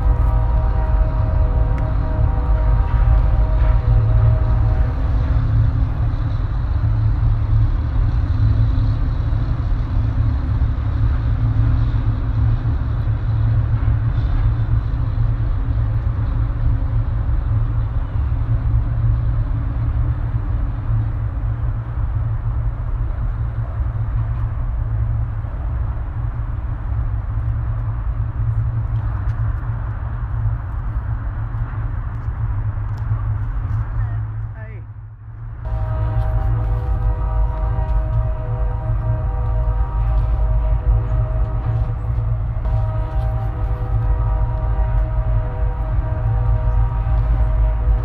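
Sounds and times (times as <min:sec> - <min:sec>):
low outdoor rumble: 0:00.0 - 0:48.0.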